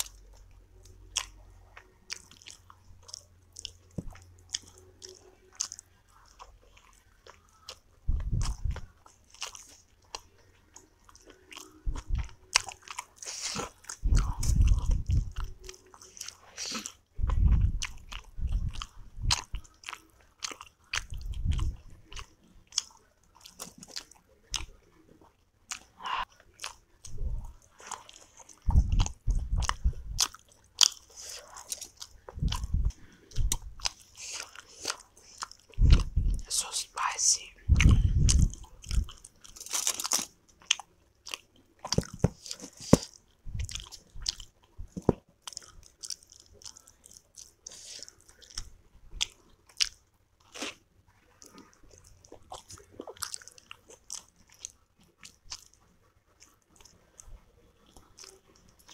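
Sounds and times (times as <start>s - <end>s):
close chewing mouth sounds: 0.0s - 58.9s.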